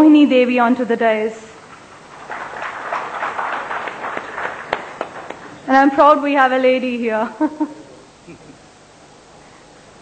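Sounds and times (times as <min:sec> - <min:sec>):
audience applauding: 0:01.6 - 0:06.1.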